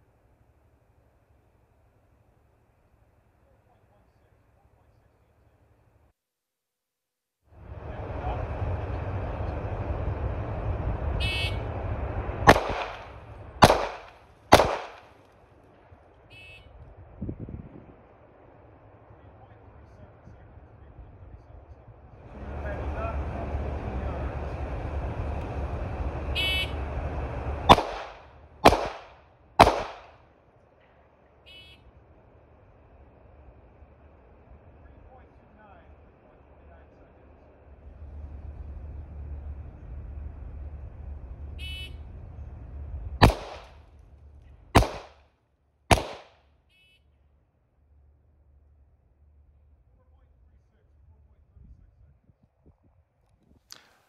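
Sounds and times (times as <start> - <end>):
steady background noise: 7.6 - 50.0
pistol shots: 12.5 - 15.2, 27.7 - 30.2, 43.2 - 43.8, 44.8 - 45.2, 45.9 - 46.4.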